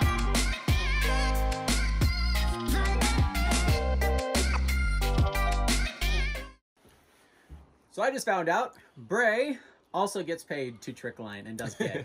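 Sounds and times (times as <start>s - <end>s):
background music: 0.0s - 6.6s.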